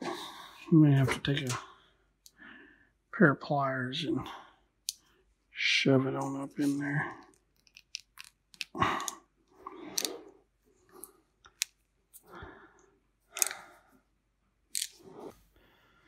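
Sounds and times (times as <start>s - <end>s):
small plastic clicks: 7.5s - 9.2s, 13.4s - 13.6s, 14.7s - 15.0s.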